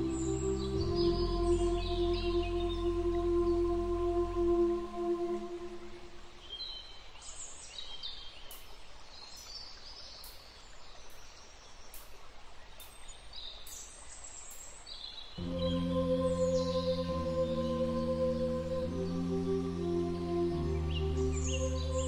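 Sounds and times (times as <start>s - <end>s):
ambient droning music: 0.0s - 6.3s, 15.4s - 22.0s
steady hiss: 0.0s - 22.0s
birds chirping: 11.1s - 22.0s.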